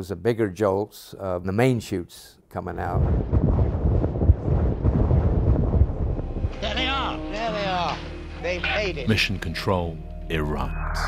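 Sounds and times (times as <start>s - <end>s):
deep irregular rumble: 2.7s - 9.0s.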